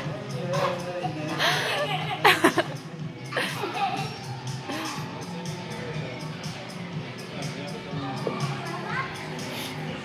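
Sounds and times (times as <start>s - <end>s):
background music with a beat: 0.0s - 10.0s
children's voices: 8.4s - 9.8s.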